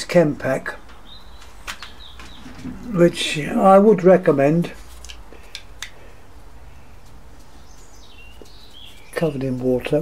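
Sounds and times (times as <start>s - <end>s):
small bird chirp: 1.0s - 2.9s, 6.7s - 9.6s.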